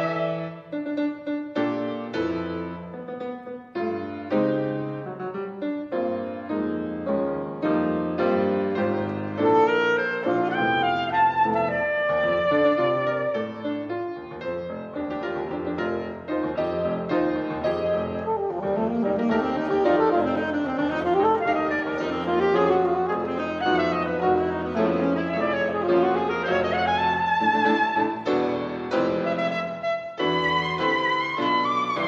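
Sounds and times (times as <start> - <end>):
piano chords: 0.0 - 32.0
alto saxophone runs: 18.6 - 27.2.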